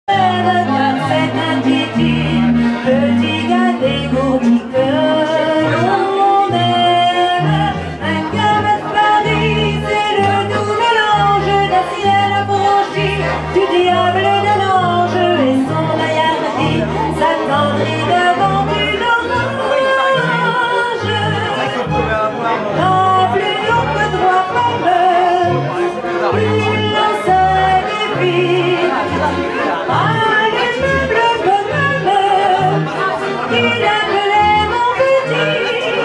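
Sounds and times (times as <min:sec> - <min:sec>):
woman singing into a microphone: 0:00.1 - 0:21.8, 0:22.8 - 0:36.0
double bass low notes: 0:00.1 - 0:36.0
piano accordion: 0:00.1 - 0:36.0.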